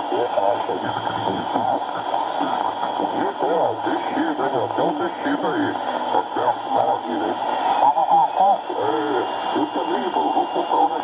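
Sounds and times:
man speaking over radio: 0.0 - 11.0
receiver hiss: 0.0 - 11.0.

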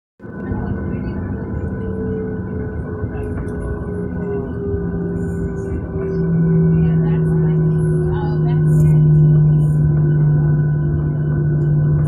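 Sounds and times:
jet engines rumbling in cabin: 0.2 - 12.0.

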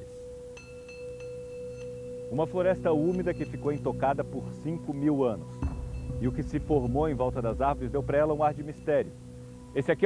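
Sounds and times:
bell-like held tones: 0.0 - 10.0
low held note: 2.1 - 10.0.

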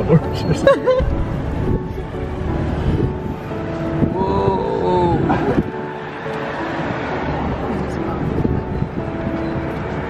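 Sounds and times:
street traffic: 0.0 - 10.0
wind noise: 0.0 - 10.0.

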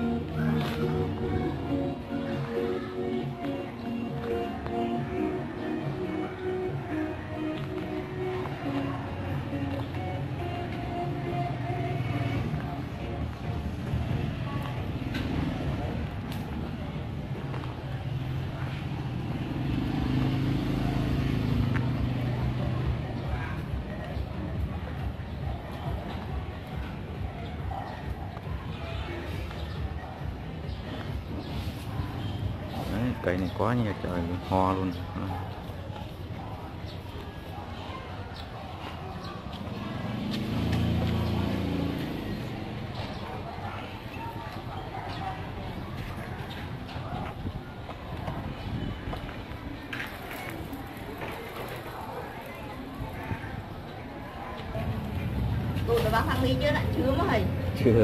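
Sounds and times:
vehicle engine running low: 6.7 - 33.3, 38.7 - 58.0
vehicle engine passing by: 17.5 - 24.0, 38.8 - 47.3, 51.9 - 58.0.

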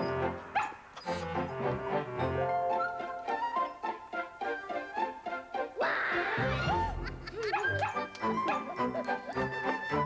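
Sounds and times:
background music: 0.0 - 10.0
small dog barking: 0.6 - 0.8, 7.4 - 8.8.

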